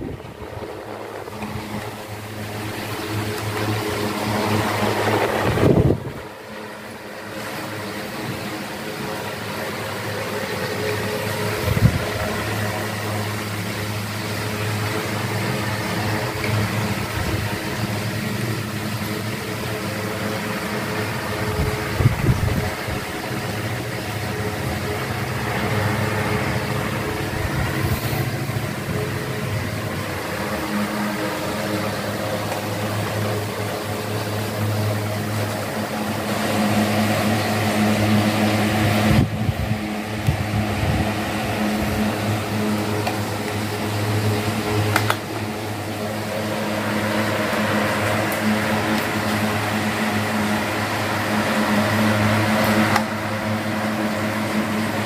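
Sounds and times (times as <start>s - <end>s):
electric fans running: 0.0s - 55.0s.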